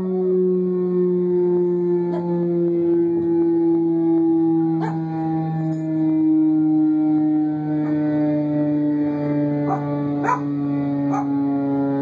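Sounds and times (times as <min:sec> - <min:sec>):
siren steady tone: 0:00.0 - 0:12.0
puppy howling yips: 0:09.7 - 0:10.5.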